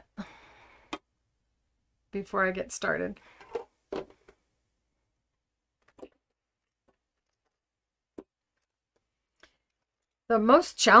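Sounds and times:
woman speaking: 2.2 - 3.2, 10.3 - 11.0.

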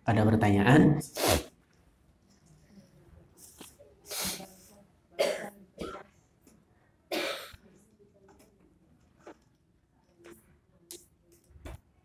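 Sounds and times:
person coughing: 5.2 - 6.0.

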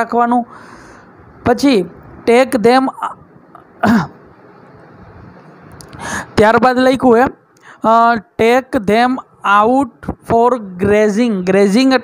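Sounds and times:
man clearing throat: 3.6 - 4.2.

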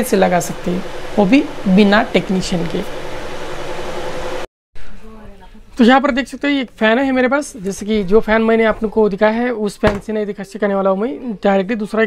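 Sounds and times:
ceiling fan whooshing: 0.0 - 5.2
faint hum: 0.0 - 5.7.

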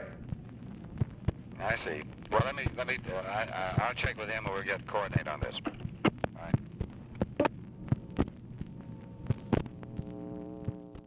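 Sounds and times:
steady electrical hum: 0.0 - 11.0
clicks and pops: 0.2 - 2.9, 5.1 - 11.0.

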